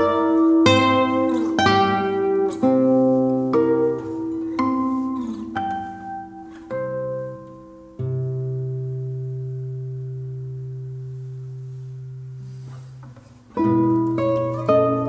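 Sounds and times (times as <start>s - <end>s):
classical guitars playing: 0.0s - 15.0s.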